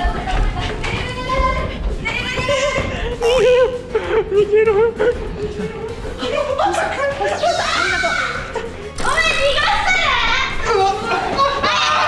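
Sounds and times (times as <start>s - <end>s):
warbling comic sound effect: 3.2s - 3.8s.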